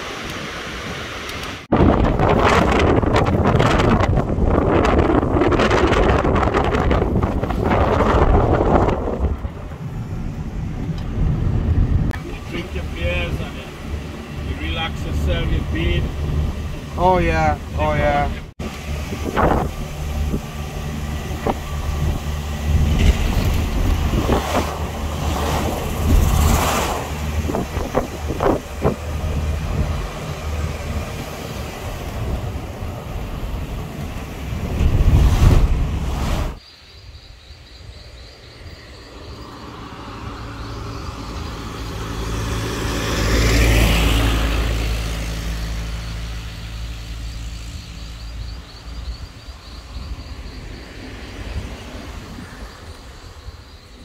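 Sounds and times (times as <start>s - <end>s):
car engine and road noise: 0.0s - 54.0s.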